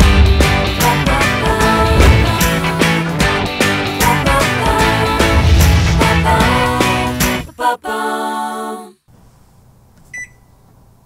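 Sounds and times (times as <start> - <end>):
microwave keypad beep: 10.1 - 10.5.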